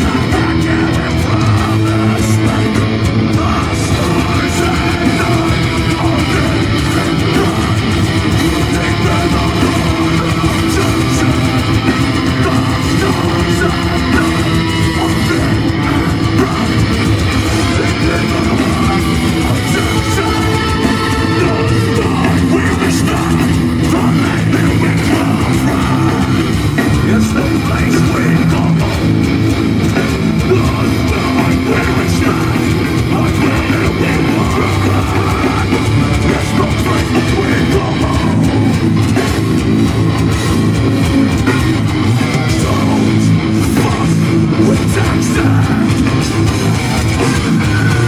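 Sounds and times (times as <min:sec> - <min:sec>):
bass guitar: 0:00.0 - 0:48.0
distorted electric guitars: 0:00.0 - 0:48.0
drum kit: 0:00.0 - 0:48.0
metalcore band playing live: 0:00.0 - 0:48.0.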